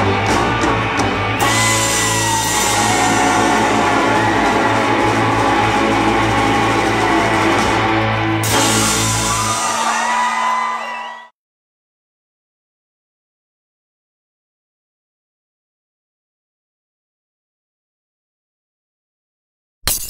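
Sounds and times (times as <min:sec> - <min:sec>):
surf rock band playing: 0:00.0 - 0:11.0.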